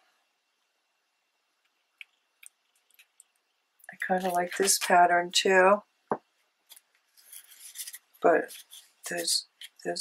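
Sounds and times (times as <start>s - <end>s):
paper sheets rustling: 6.7s - 9.8s.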